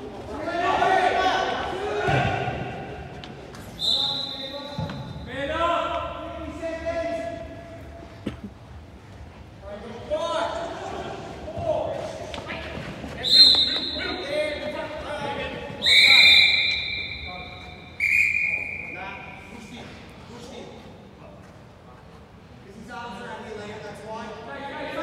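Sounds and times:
players shouting: 0.2 - 3.1
referee's whistle blasts: 3.7 - 5.3, 13.2 - 14.2, 15.8 - 19.5.

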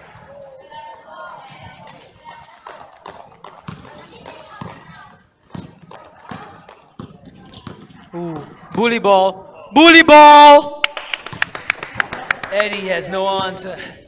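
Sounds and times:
basketball bouncing on hard court: 2.6 - 9.0, 13.3 - 13.6.

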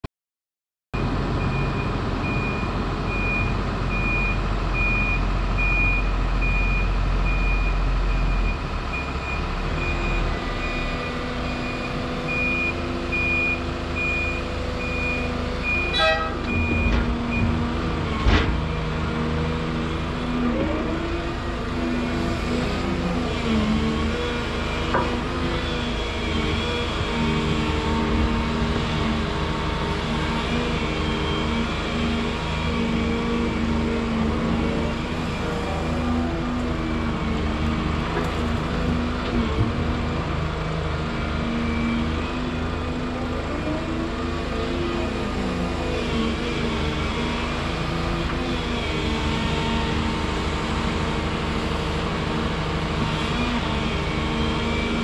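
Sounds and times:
reversing alarm beeping: 1.0 - 17.6
diesel engines running: 1.0 - 55.0.

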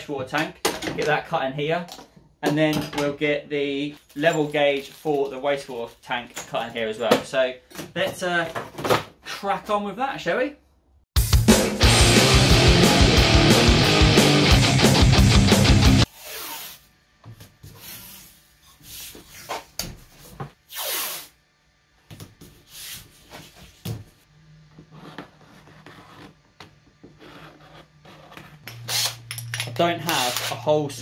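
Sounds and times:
guitar intro music: 11.2 - 16.1.

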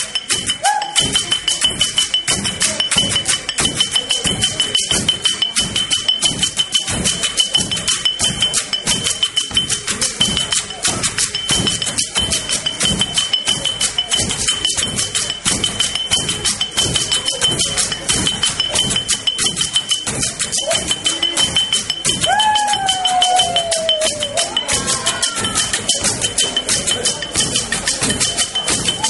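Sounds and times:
fast drumming: 0.0 - 29.0
high rattle: 0.0 - 29.0.

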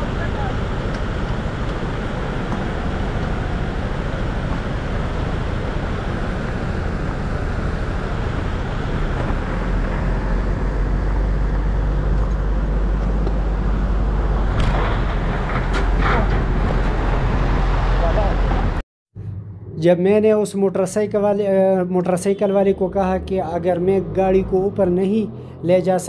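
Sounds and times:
motorcycle engine rumble: 0.0 - 16.6.

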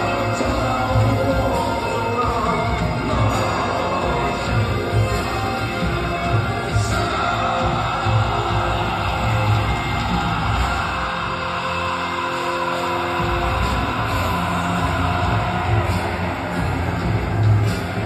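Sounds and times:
bass: 0.0 - 18.0
distorted guitars: 0.0 - 18.0
drums: 0.0 - 18.0
metal band playing live: 0.0 - 18.0.

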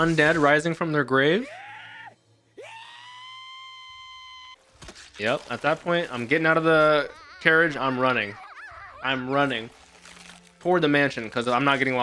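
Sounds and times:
high-pitched scream of terror: 1.4 - 4.6.

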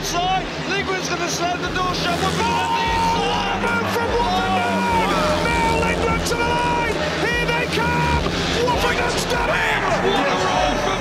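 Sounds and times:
commentator talking: 0.0 - 11.0
crowd noise: 0.0 - 11.0
motorcycle engines racing: 0.0 - 11.0.

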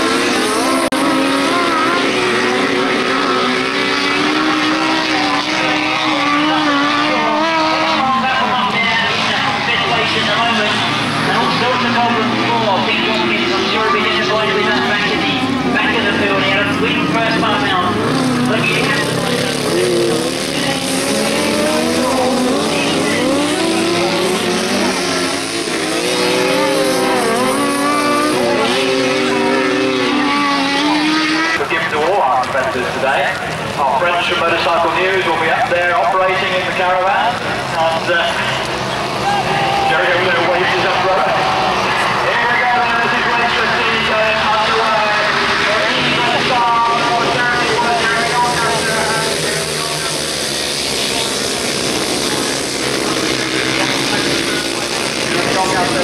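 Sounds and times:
racing engines revving: 0.0 - 56.0.

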